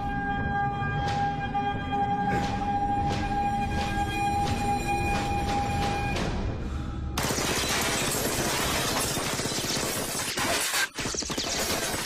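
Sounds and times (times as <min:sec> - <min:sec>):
rapid handgun fire: 0:07.2 - 0:12.0.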